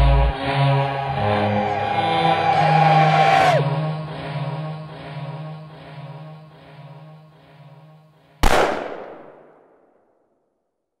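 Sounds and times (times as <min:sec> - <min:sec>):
music with sustained tones: 0:00.0 - 0:08.2
pistol shot with echo: 0:08.4 - 0:10.1.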